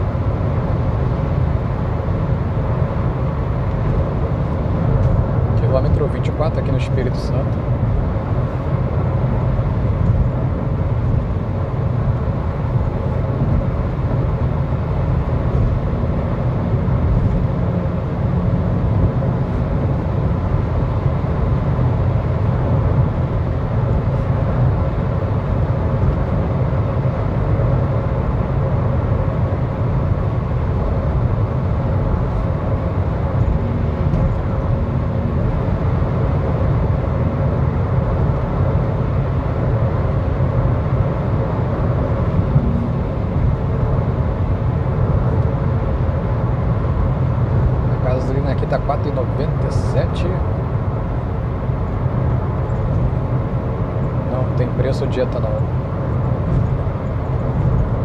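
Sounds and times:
car road and engine rumble: 0.0 - 58.0.

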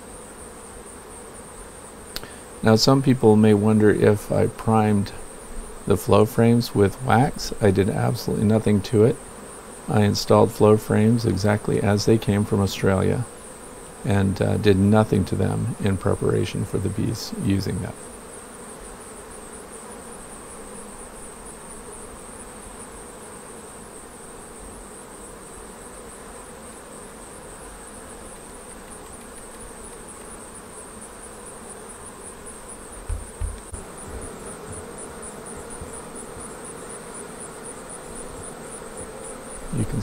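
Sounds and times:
bees humming: 0.0 - 40.0
low bumps: 32.9 - 35.0.

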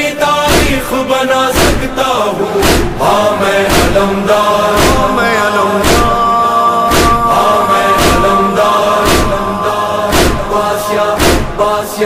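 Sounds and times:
chanted lament with choir backing: 0.0 - 12.0
heavy beat: 0.5 - 1.0, 1.6 - 2.0, 2.6 - 11.8.

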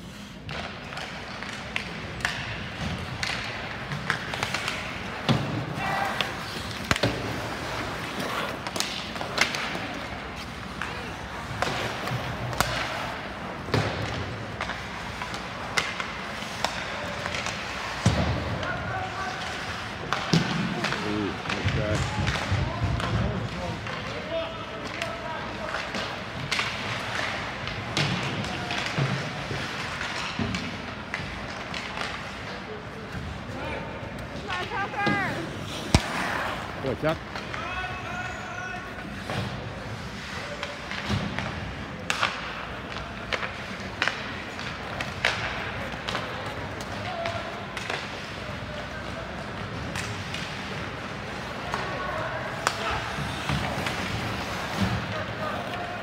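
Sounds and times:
hockey sticks and puck knocking: 0.4 - 33.4, 34.1 - 38.0, 39.0 - 56.0
people shouting: 5.7 - 6.4.

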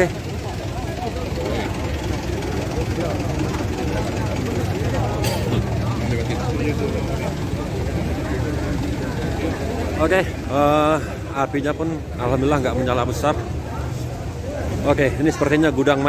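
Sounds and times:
crowd chatter: 0.0 - 16.0
heavy engine idling: 0.0 - 16.0.

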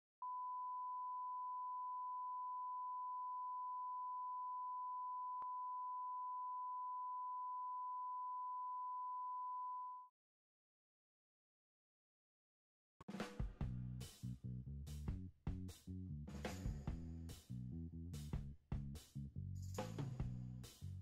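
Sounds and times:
electronic sine tone: 0.2 - 10.1.

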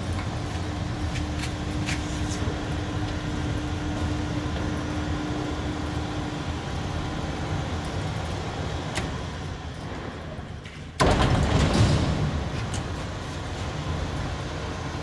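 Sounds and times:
electric motor and gearbox rumble: 0.0 - 15.0
steady hum: 0.0 - 15.0.

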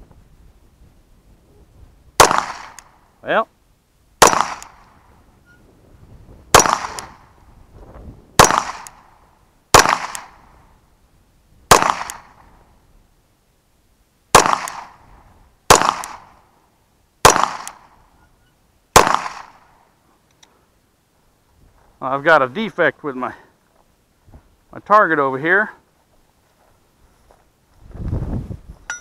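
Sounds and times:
pistol shots with echo: 2.2 - 2.9, 4.2 - 4.8, 6.5 - 7.3, 8.4 - 9.1, 9.7 - 10.4, 11.7 - 12.4, 14.3 - 15.0, 15.7 - 16.4, 17.2 - 17.9, 19.0 - 19.7.

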